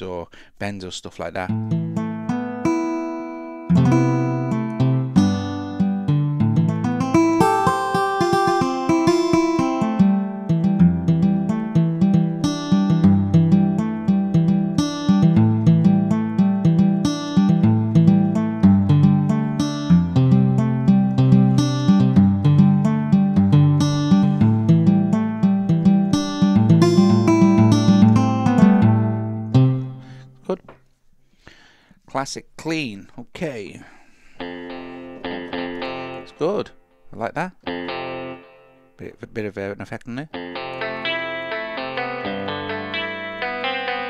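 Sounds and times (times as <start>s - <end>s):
acoustic guitar notes and chords: 1.5s - 30.8s, 34.2s - 39.1s, 40.3s - 44.0s.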